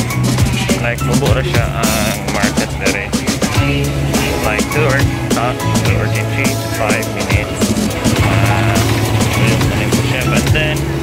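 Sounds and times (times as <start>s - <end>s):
music playing: 0.0s - 11.0s
steady low held note: 3.6s - 11.0s.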